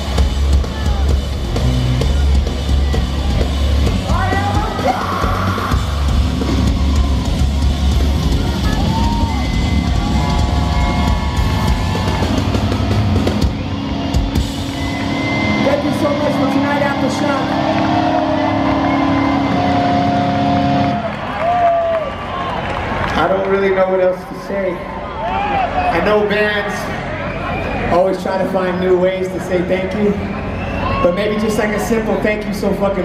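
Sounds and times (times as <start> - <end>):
live rock band playing: 0.0 - 21.6.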